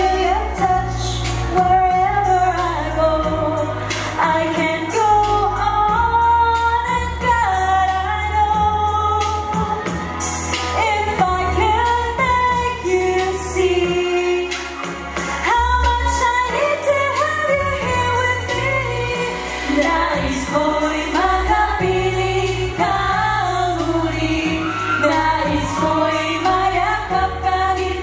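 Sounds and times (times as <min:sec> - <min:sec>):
backing music with bass line: 0:00.0 - 0:28.0
woman singing into a microphone: 0:00.0 - 0:28.0.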